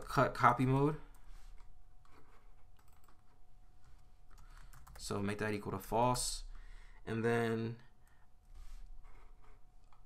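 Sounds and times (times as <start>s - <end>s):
computer keyboard typing: 0.6s - 5.1s.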